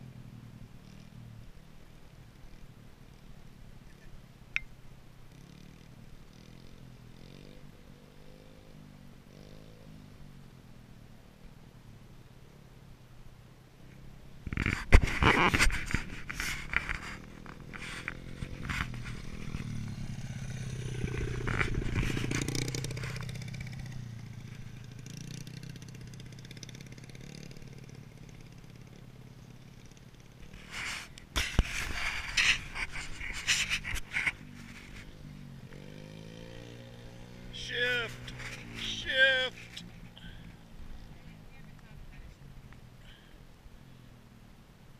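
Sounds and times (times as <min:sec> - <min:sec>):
dirt bike engine passing: 0:05.2 - 0:11.1, 0:13.8 - 0:44.3.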